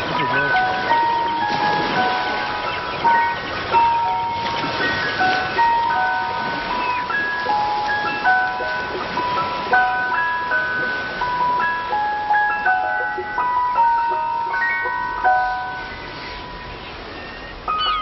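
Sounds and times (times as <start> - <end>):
ice cream van chime tune: 0.0 - 18.0.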